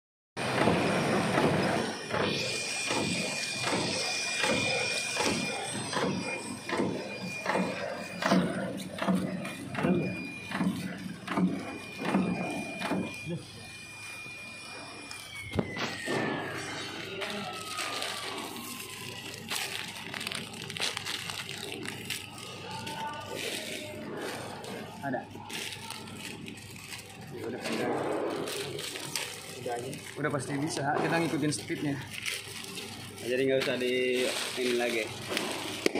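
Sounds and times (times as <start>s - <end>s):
high machine whine: 0.4s - 35.9s.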